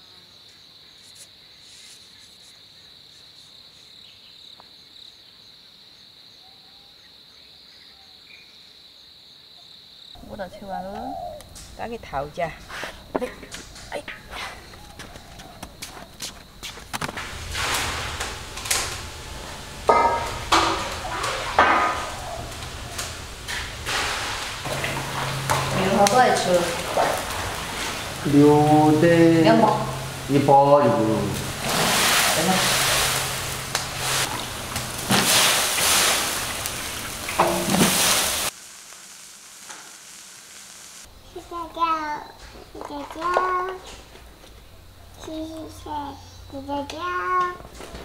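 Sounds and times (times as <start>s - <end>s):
green beans sizzling in a wok: 16.8s - 43.4s
metal clank: 17.2s - 28.0s, 37.4s - 38.0s
metal scoop scraping beans: 34.0s - 38.5s.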